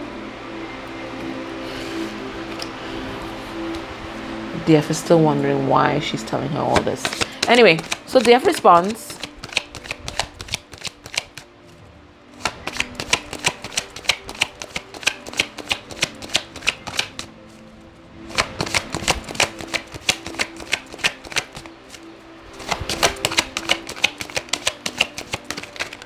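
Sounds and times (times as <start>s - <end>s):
faint background music: 0.0s - 26.0s
cards shuffling: 6.7s - 11.8s, 12.4s - 26.0s.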